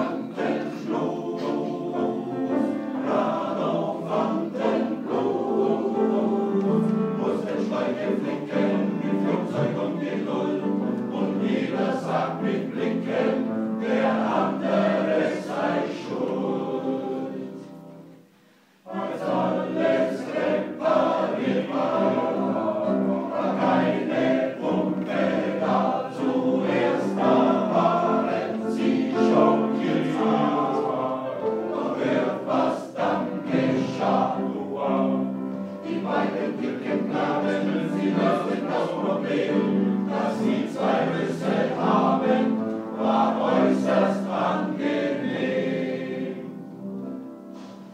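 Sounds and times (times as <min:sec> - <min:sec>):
men's choir singing blues: 0:00.0 - 0:18.0, 0:18.8 - 0:46.8
piano accompaniment: 0:00.0 - 0:47.9.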